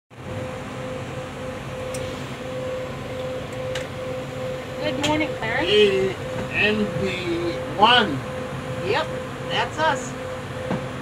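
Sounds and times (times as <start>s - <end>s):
mechanical hum with tone: 0.1s - 11.0s.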